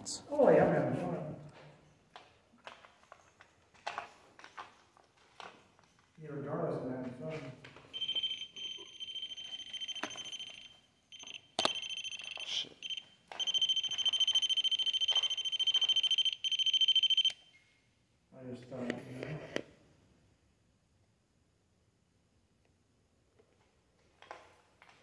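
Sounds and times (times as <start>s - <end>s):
high-pitched electronic alarm tone: 7.9s - 17.5s
handling knocks and clicks: 9.4s - 16.3s.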